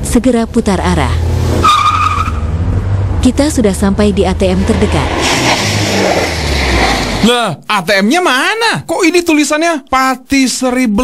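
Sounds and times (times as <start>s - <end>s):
car engine rumble: 0.0s - 7.3s
tyres squealing: 1.4s - 2.6s.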